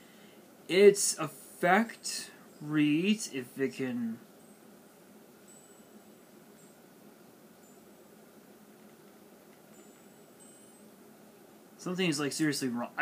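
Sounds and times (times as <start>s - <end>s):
faint high-pitched tones: 0.0s - 13.0s
steady hiss: 0.0s - 13.0s.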